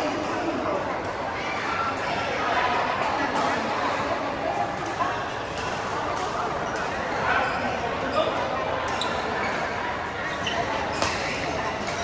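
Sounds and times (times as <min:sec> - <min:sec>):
voices in a large hall: 0:00.0 - 0:12.0
racket hitting shuttlecock: 0:10.9 - 0:12.0.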